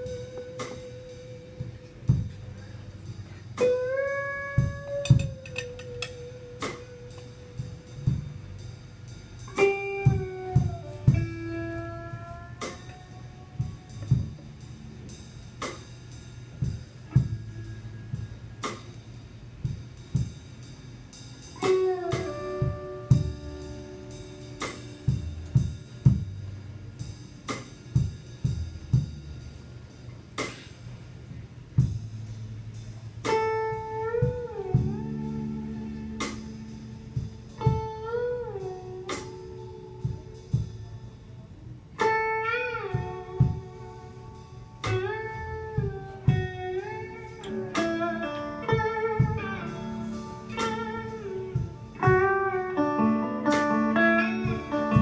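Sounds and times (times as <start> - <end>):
lead guitar bent notes: 0.0 - 19.0, 21.5 - 26.3, 42.0 - 55.0
drum kit beat: 0.0 - 55.0
electric bass: 0.0 - 55.0
electric blues band playing: 0.0 - 55.0.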